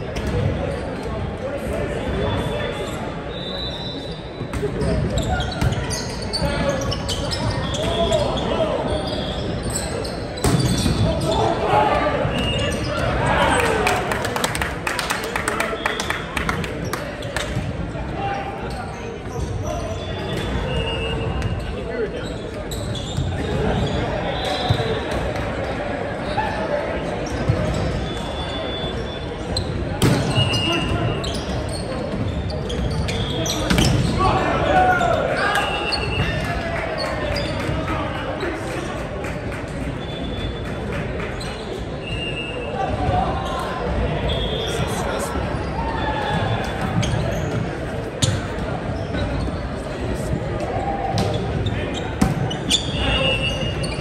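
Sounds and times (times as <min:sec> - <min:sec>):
echoing gym hubbub: 0:00.0 - 0:54.0
sneakers squeaking on hardwood floor: 0:03.3 - 0:11.6, 0:18.7 - 0:25.1, 0:27.2 - 0:37.8, 0:41.3 - 0:50.4, 0:51.1 - 0:54.0
many voices talking and calling: 0:14.9 - 0:54.0
players calling and chatting: 0:41.7 - 0:54.0.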